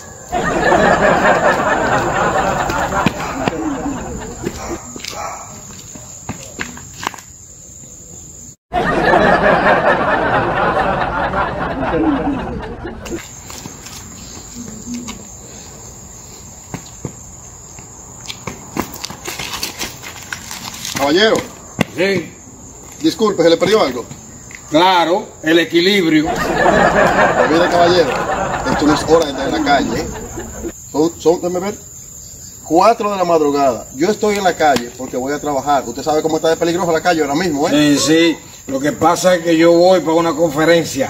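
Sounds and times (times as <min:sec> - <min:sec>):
crickets trilling: 0:00.0 - 0:41.0.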